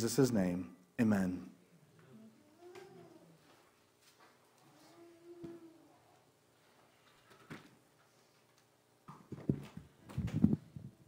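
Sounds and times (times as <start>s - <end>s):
microphone knocks and rustling: 9.1s - 10.9s.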